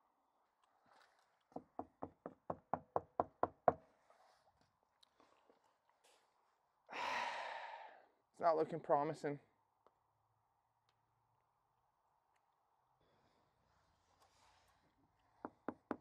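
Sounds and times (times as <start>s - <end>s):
rapid knocking on a door: 1.6s - 3.8s, 15.4s - 16.0s
breathy rush of noise: 6.9s - 8.1s.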